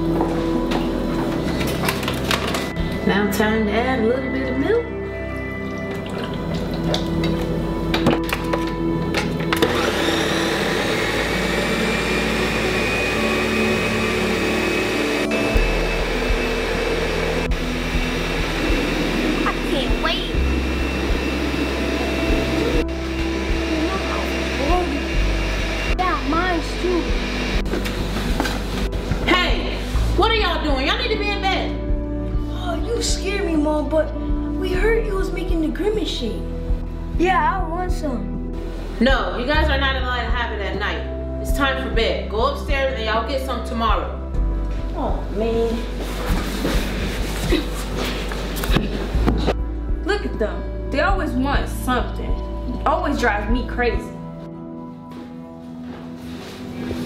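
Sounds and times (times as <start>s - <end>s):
background music: 0.0s - 57.0s
kitchen blender whirring: 9.5s - 28.8s.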